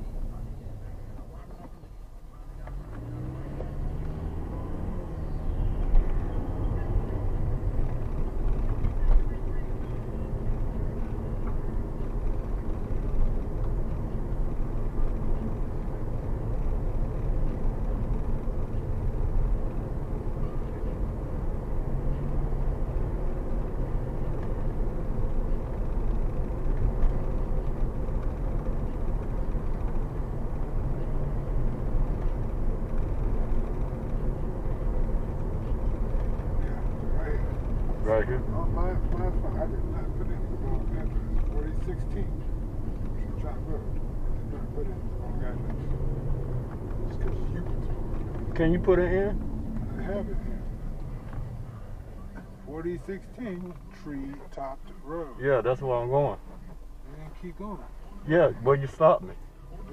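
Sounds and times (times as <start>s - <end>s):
car engine accelerating: 0.0s - 59.9s.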